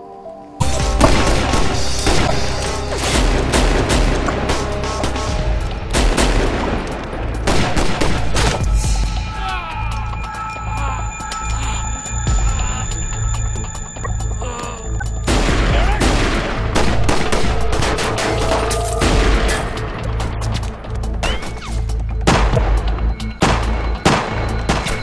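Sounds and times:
music with heavy bass: 0.6 - 23.9
rapid gunfire: 1.0 - 8.7.

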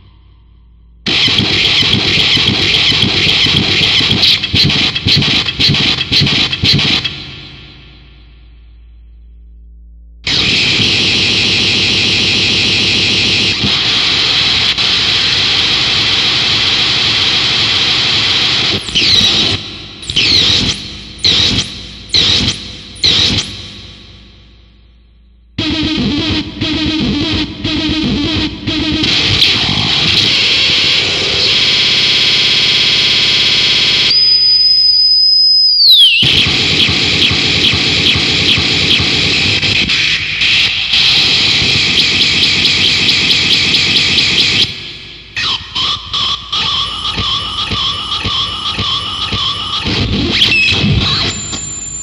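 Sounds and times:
distorted electronic noise: 1.0 - 8.6, 10.2 - 52.0
stuttering noise pulses: 1.1 - 8.3, 10.1 - 33.6
high whine sliding down: 9.7 - 24.7, 25.6 - 32.5.

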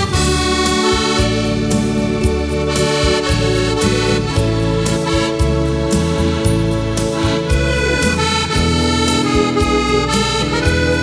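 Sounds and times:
accordion melody: 0.0 - 11.0
bass and drum accompaniment: 0.0 - 11.0.

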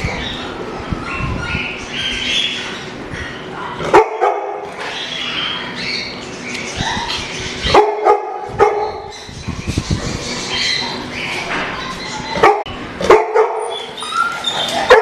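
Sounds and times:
dog barking: 3.6 - 4.6, 7.7 - 9.1, 12.4 - 13.8, 14.8 - 15.0.

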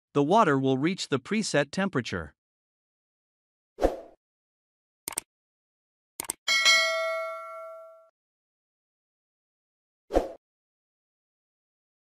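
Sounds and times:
mouse clicks: 5.1 - 5.3, 6.2 - 6.4
bright bell ding: 6.5 - 8.1.

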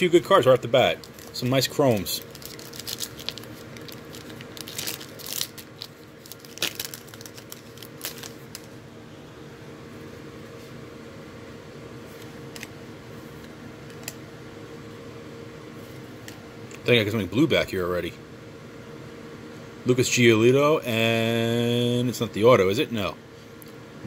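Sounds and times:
steady background hum: 0.0 - 24.0
wrapper tearing and crinkling: 1.0 - 8.8.

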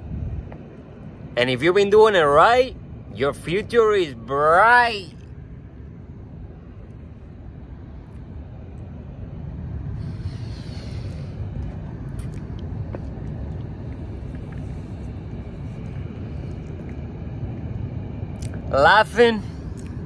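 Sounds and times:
low outdoor rumble: 0.0 - 20.0
hiss sweeping past: 9.9 - 12.3.

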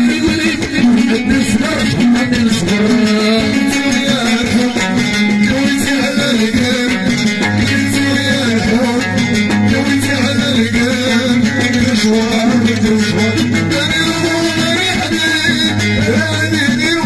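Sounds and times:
plucked lute melody: 0.0 - 17.0
steady rhythm: 0.0 - 17.0.

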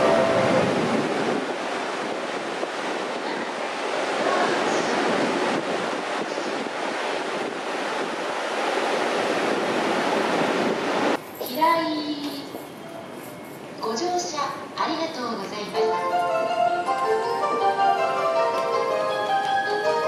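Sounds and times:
steady rushing noise: 0.0 - 11.2
wind on microphone: 0.0 - 11.2.

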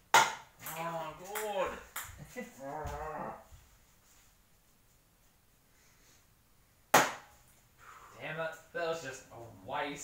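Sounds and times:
sharp loud knock: 6.9 - 7.3.

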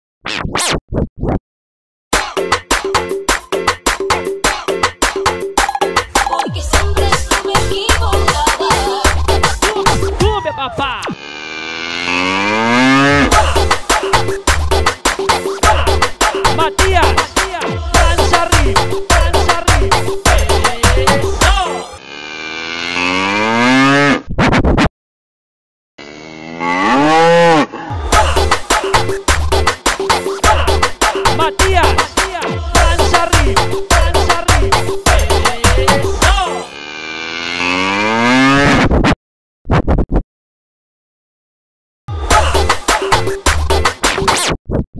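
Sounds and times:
record scratching: 0.2 - 1.4, 6.3 - 11.6, 23.3 - 24.9, 38.4 - 40.2, 42.3 - 44.9
music with steady drum beat: 2.2 - 10.2, 13.3 - 21.6, 28.0 - 36.4, 42.2 - 44.1
cow mooing: 11.4 - 13.3, 22.0 - 24.2, 26.0 - 27.8, 36.6 - 38.6.

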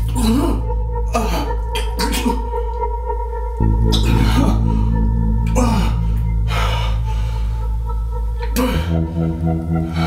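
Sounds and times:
low film score drone: 0.0 - 10.0
man breathing heavily: 0.0 - 10.0.

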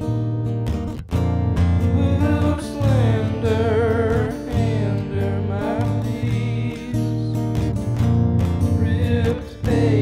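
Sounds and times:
nylon-string guitar strummed: 0.0 - 10.0.

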